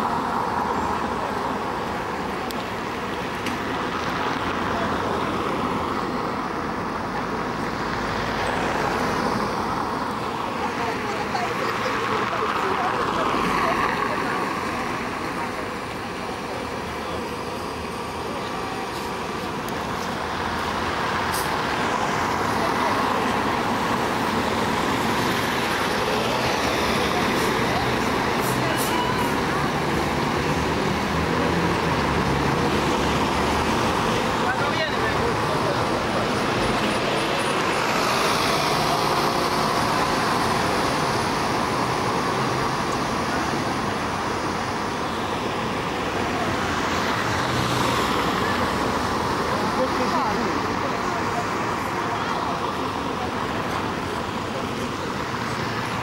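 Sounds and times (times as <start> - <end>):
vehicles passing close by: 0.0 - 56.0
people talking: 4.2 - 5.6, 10.1 - 56.0.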